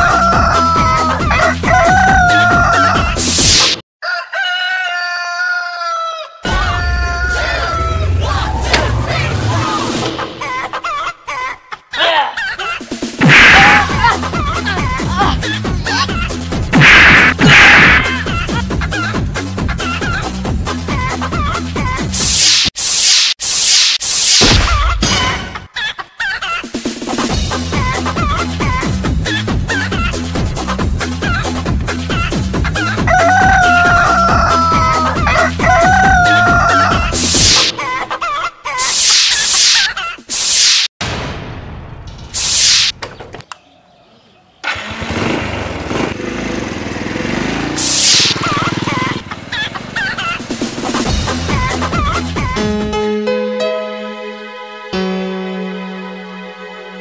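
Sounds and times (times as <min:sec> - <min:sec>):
loud hissing bursts: 0:22.1 - 0:24.5, 0:37.2 - 0:37.7, 0:38.8 - 0:40.9, 0:42.4 - 0:42.9, 0:47.7 - 0:48.6
short loud rushing burst: 0:47.8 - 0:48.5
chicken clucking: 0:48.4 - 0:51.1.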